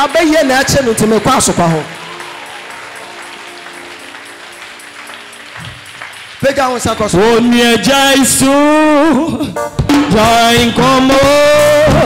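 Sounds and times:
congregation applause: 0:00.0 - 0:08.8
church band sustained chords: 0:00.0 - 0:12.0.

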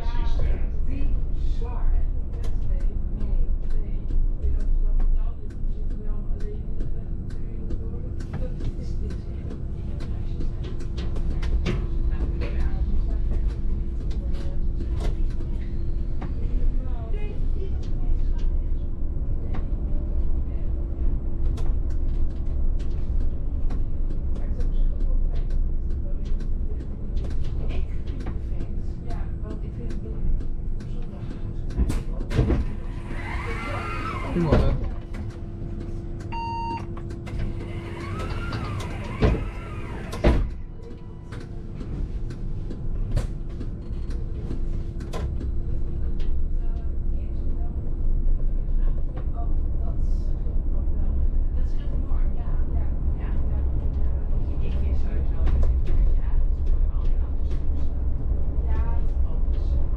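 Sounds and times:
bus drivetrain and road rumble: 0:00.0 - 0:59.9.

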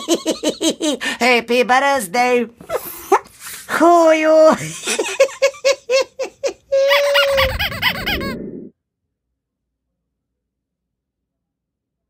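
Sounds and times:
man laughing in squeaky bursts: 0:04.6 - 0:08.4.

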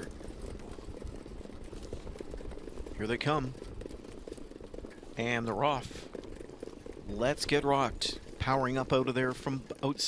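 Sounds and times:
low rumble of racing horses and truck: 0:00.0 - 0:10.0.

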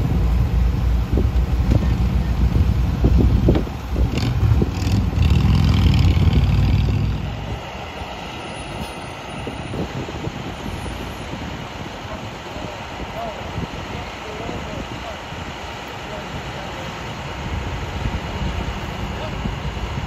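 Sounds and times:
wind buffeting microphone: 0:00.0 - 0:20.0
truck driving past: 0:04.0 - 0:09.6.

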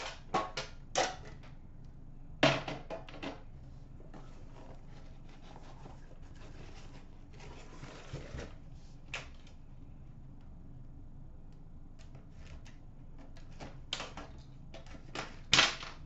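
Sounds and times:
cardboard flaps rustling: 0:04.0 - 0:09.1.

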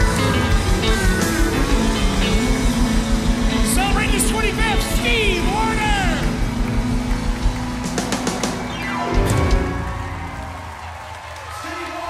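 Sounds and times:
live country band playing: 0:00.0 - 0:10.5.

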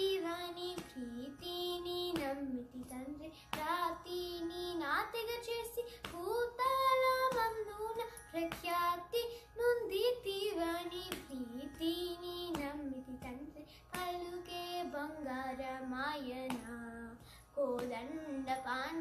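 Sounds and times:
girl singing: 0:00.0 - 0:19.0.

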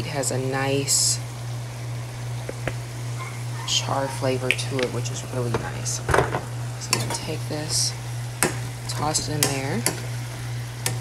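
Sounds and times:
steady low hum: 0:00.0 - 0:11.0
sauce simmering in a pan: 0:07.4 - 0:11.0.

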